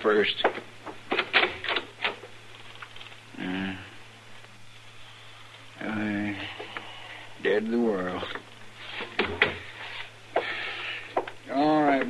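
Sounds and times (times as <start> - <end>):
rapid clicks and knocks: 0.4 - 3.2.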